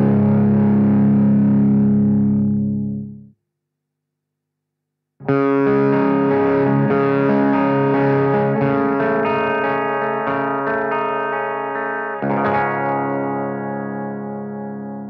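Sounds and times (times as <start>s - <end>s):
electric guitar ringing chords: 0.0s - 3.3s, 5.2s - 15.0s.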